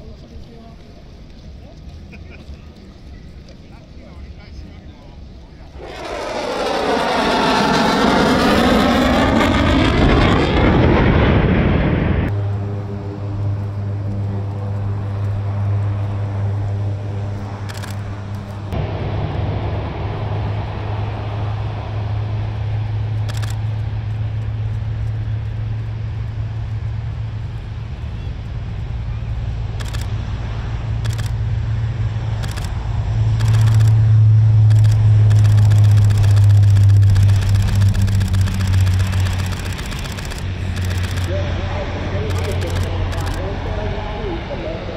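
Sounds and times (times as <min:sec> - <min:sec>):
turboprop propeller drone: 0:01.2 - 0:44.9
fighter jet roar passing overhead: 0:05.6 - 0:44.9.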